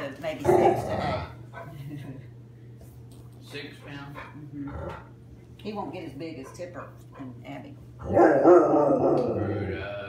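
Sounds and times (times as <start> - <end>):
large dog growling: 0.4 - 1.4, 4.6 - 5.1, 8.0 - 10.0.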